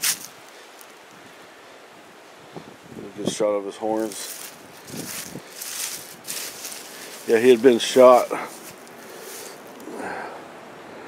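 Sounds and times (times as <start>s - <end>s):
soft rustling: 4.0s - 9.9s.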